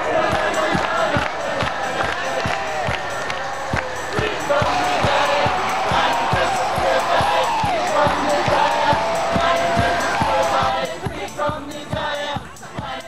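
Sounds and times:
person singing: 0:00.0 - 0:13.0.

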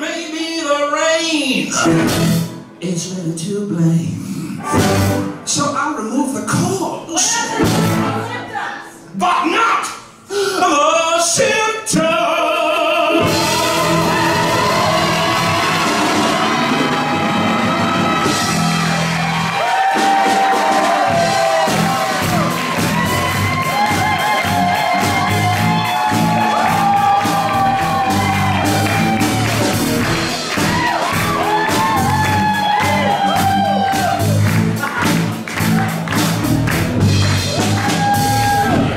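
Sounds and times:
live rock band playing: 0:01.7 - 0:02.8, 0:04.6 - 0:05.7, 0:13.2 - 0:38.9.

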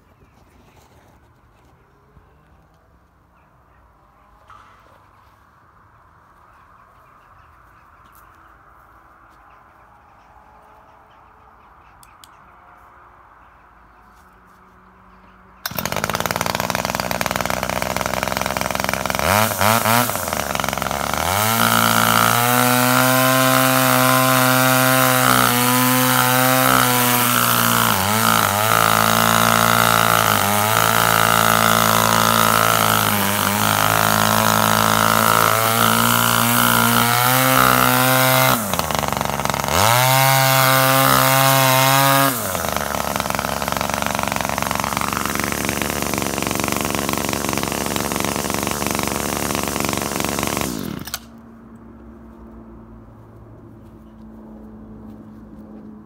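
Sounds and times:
brushcutter engine revving: 0:15.6 - 0:51.4.

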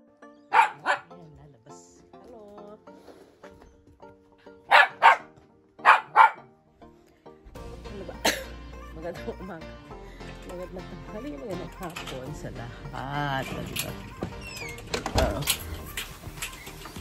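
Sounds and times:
background music with held notes: 0:00.0 - 0:17.0
dog barking: 0:00.5 - 0:01.1, 0:04.6 - 0:06.5.

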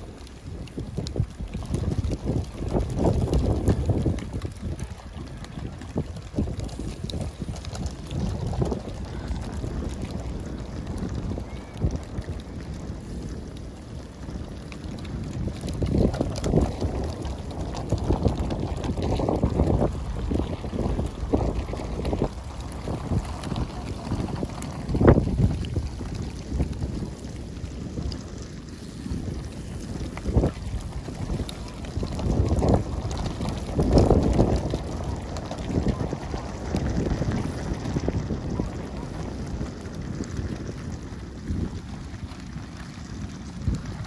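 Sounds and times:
wind buffeting the microphone: 0:00.0 - 0:44.0.

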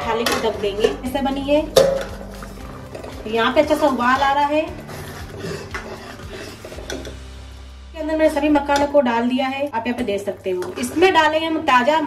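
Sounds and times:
ladle stirring boiling gravy: 0:01.7 - 0:07.4, 0:09.7 - 0:11.9.

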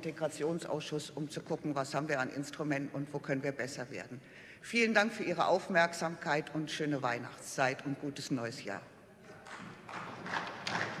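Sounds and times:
scattered applause: 0:09.4 - 0:11.0.

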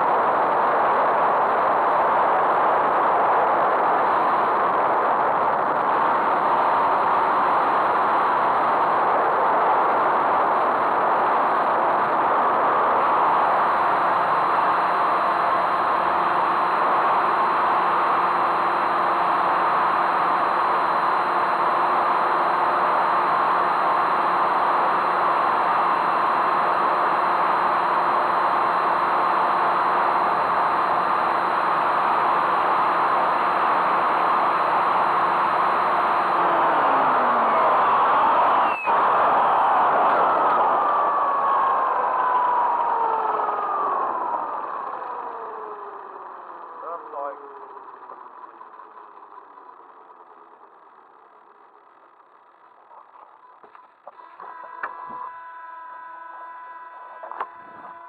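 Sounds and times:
helicopter motor and rotor whine: 0:00.1 - 0:49.0.

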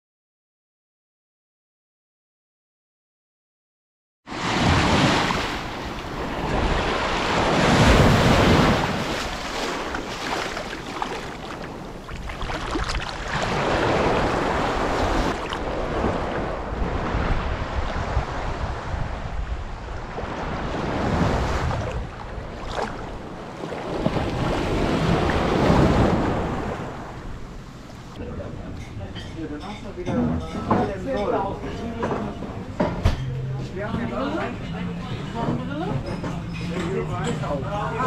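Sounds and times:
small waves breaking on sand: 0:04.3 - 0:28.2
wind rumbling on microphone: 0:04.6 - 0:28.2.

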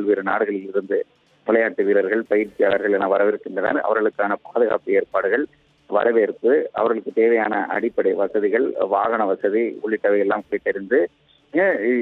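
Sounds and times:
man speaking over telephone: 0:00.0 - 0:12.0.

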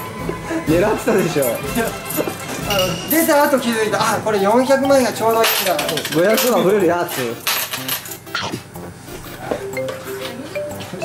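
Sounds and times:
metal medals clinking: 0:01.3 - 0:08.3.

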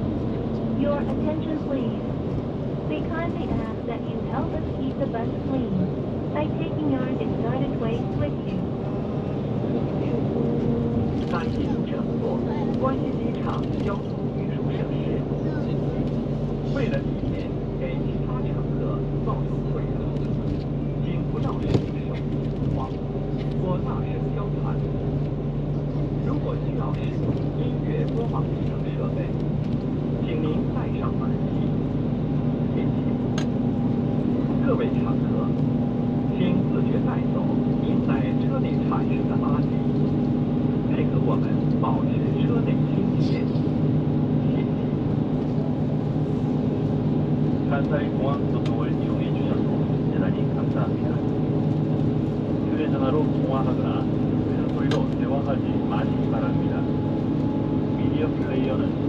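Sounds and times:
bus engine and road noise: 0:00.0 - 0:59.0.

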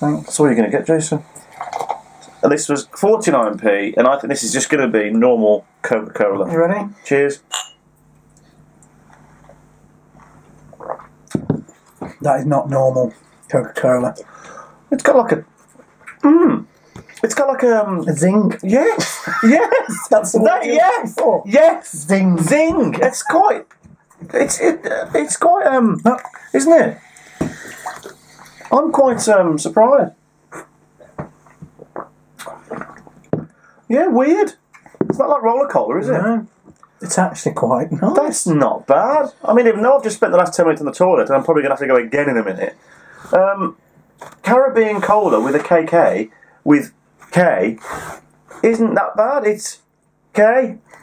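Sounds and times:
sipping and swallowing cola: 0:10.6 - 0:11.3, 0:31.8 - 0:33.3
mouth or throat noise: 0:10.6 - 0:11.5, 0:16.1 - 0:16.7, 0:30.5 - 0:33.5.

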